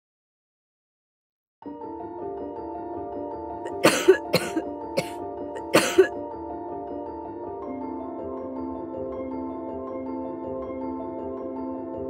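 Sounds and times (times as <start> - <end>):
short sharp coughs: 3.7 - 6.1.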